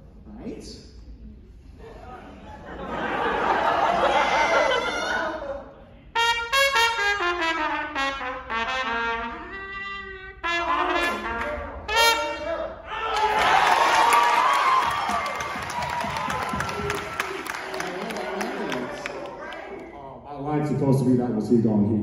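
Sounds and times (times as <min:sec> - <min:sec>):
audience noise: 0:01.2 - 0:06.6, 0:10.4 - 0:21.0
solo trumpet: 0:06.1 - 0:12.8.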